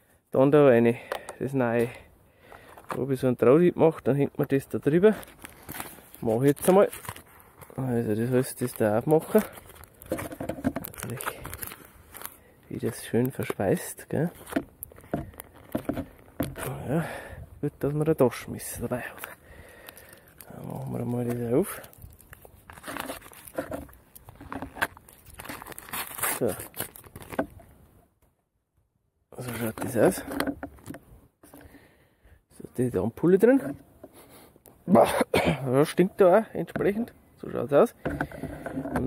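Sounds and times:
foil sachet crinkling: 4.9 - 16.8, 18.7 - 27.4.

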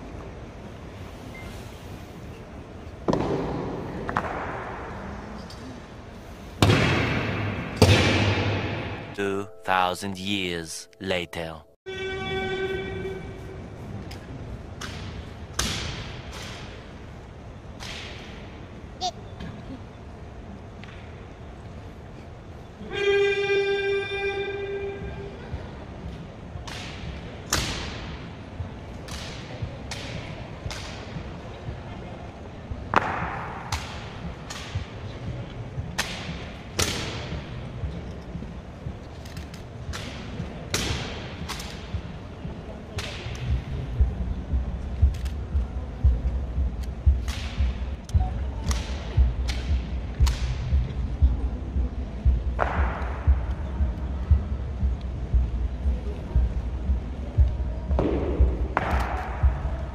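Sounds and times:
loud held note: 9.1 - 13.7
low rumbling background: 43.3 - 59.9.

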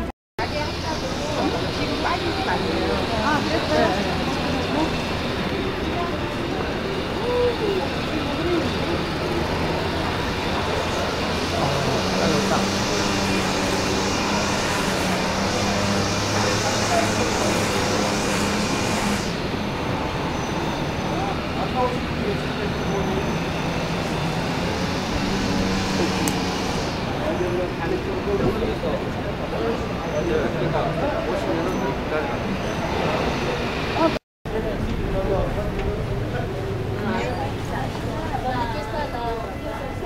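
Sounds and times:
crowd chatter: 0.0 - 40.0
rushing background noise: 0.0 - 40.0
vehicle engine humming: 0.0 - 40.0.

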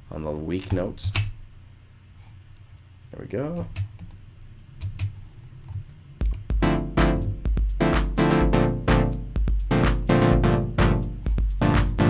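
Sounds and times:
stuttering synthesizer chords: 6.2 - 12.0.

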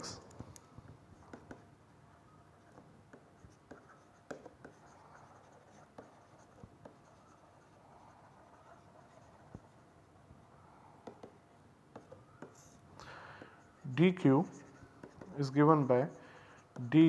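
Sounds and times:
pen tapping on tablet: 1.2 - 1.6, 11.0 - 12.6
stylus scratching on tablet: 2.4 - 10.1, 11.0 - 12.8, 13.6 - 17.0.

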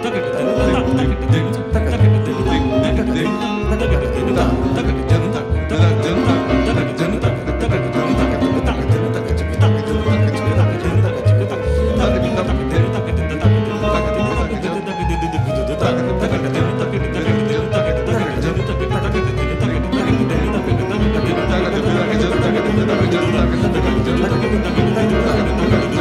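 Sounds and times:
grand piano: 0.0 - 26.0
plucked double bass: 0.0 - 26.0.

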